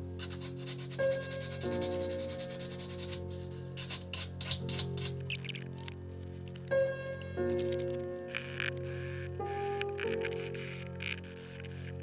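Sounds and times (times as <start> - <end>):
hand sanding strokes: 0.0 - 5.1
soft background music: 0.0 - 12.0.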